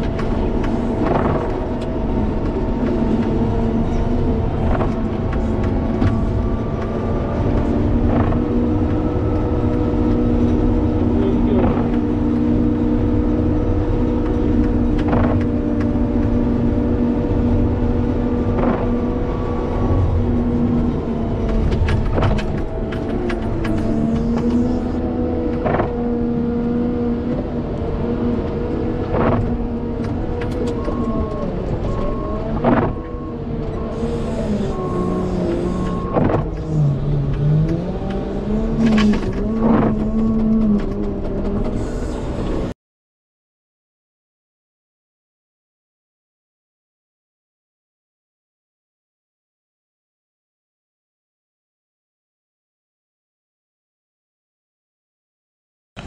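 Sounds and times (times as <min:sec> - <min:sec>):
diesel engine under load: 0:00.0 - 0:42.8.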